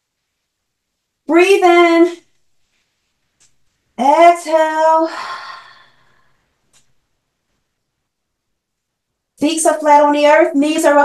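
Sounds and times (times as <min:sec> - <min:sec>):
woman speaking: 0:01.3 - 0:02.3, 0:04.0 - 0:05.9, 0:09.4 - 0:11.0
woman breathy exhale: 0:05.1 - 0:06.4.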